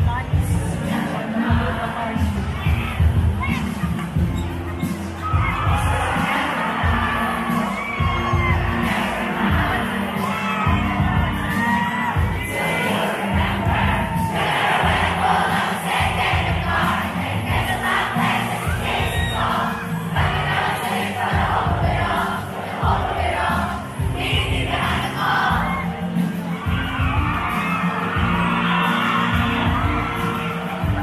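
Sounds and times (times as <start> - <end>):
pop music from speakers: 0.0 - 31.0
crowd cheering and screaming: 0.1 - 31.0
shrill shouts: 4.6 - 15.2.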